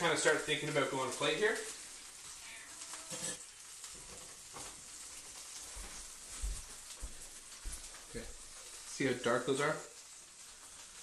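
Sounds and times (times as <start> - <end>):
fish sizzling in a pan: 0.0 - 11.0.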